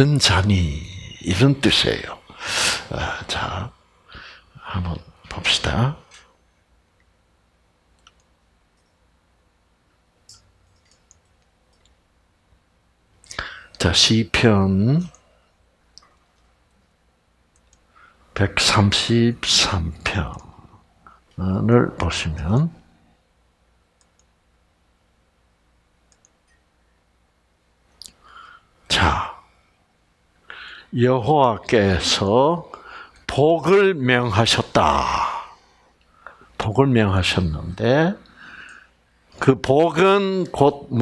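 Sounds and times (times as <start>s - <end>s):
computer mouse clicks: 8.0s - 9.0s, 10.3s - 12.0s, 17.5s - 17.9s, 24.0s - 24.3s, 26.1s - 26.6s.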